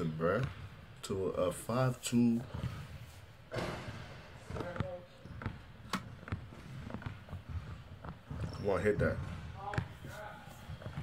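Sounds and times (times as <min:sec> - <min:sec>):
basketball bouncing on hardwood: 0:03.6 - 0:10.0.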